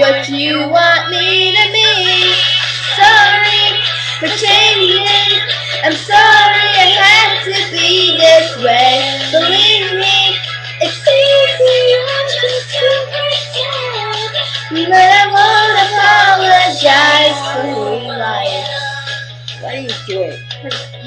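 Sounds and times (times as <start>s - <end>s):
girls singing: 0.0s - 19.3s
pop backing track: 0.0s - 21.0s
steady low hum: 0.0s - 21.0s.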